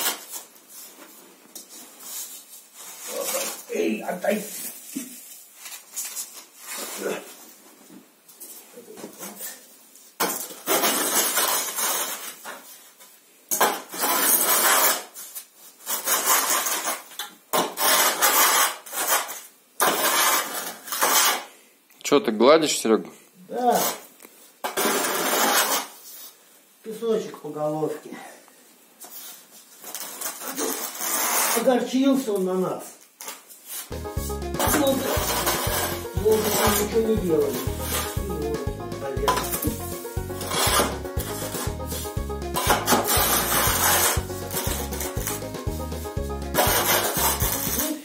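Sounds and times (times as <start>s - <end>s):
metal rule scraping sand: 34.6s - 39.6s, 40.4s - 45.4s, 46.5s - 47.8s.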